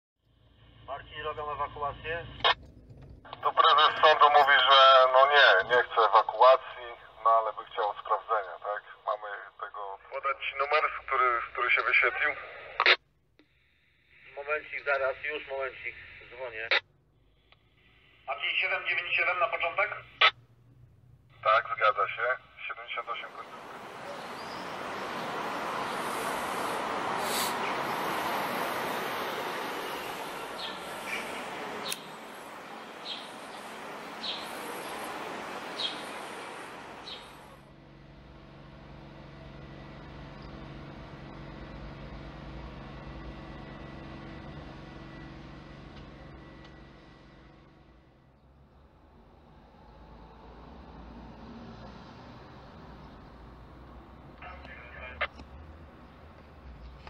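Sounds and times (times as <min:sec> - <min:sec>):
outdoor street noise: 0:00.2 - 0:57.0
low motor hum: 0:02.3 - 0:03.4, 0:23.3 - 0:50.3
man speaking: 0:03.4 - 0:12.9, 0:21.4 - 0:23.7, 0:54.4 - 0:55.3
bird chirping: 0:23.8 - 0:26.5, 0:29.8 - 0:37.4.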